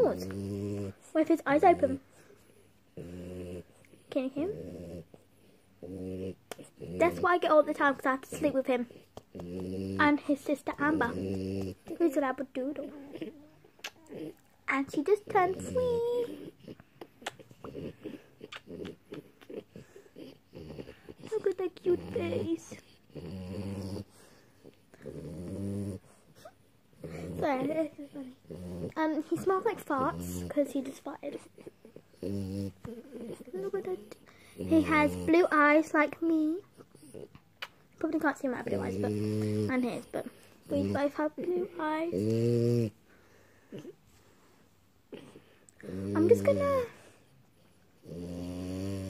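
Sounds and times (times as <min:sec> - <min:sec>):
dog snoring: 0:00.0 - 0:02.3, 0:02.9 - 0:37.4, 0:38.2 - 0:43.1, 0:45.1 - 0:49.0.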